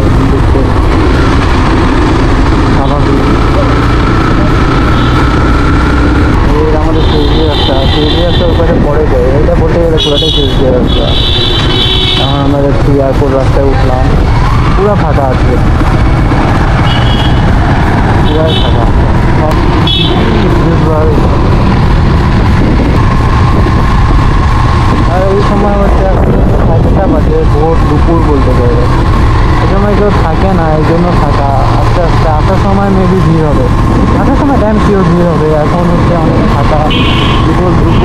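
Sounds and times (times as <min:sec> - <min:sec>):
man talking: 0:00.0 - 0:00.8, 0:02.7 - 0:03.8, 0:06.4 - 0:11.3, 0:12.2 - 0:15.8, 0:18.2 - 0:21.6, 0:25.0 - 0:29.0, 0:29.6 - 0:38.0
motorcycle engine running: 0:00.0 - 0:38.0
wind buffeting microphone: 0:18.8 - 0:31.0, 0:33.6 - 0:34.8.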